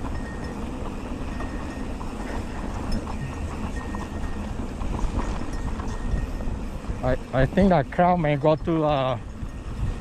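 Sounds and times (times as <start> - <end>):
bike clicks and rattles: 0.0 - 6.6
tyres crunching on loose dirt: 0.0 - 10.0.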